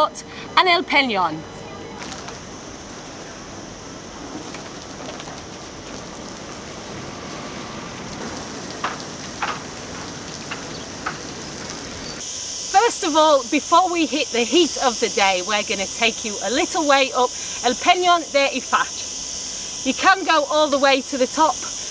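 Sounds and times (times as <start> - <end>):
marina background hiss: 0.0 - 21.9.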